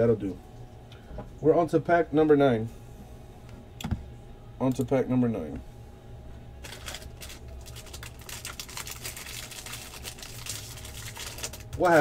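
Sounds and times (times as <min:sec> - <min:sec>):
foil wrapper crinkling: 0:06.6 - 0:12.0
foil wrapper tearing: 0:06.6 - 0:12.0.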